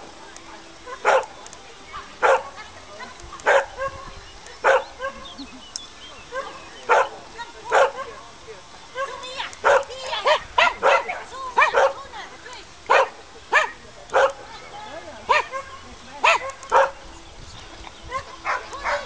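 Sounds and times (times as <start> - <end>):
small dog barking: 1.0 - 1.3, 2.2 - 2.6, 3.4 - 4.0, 4.6 - 5.3, 6.3 - 8.1, 9.6 - 12.0, 12.9 - 14.4, 15.3 - 17.0, 18.1 - 19.0.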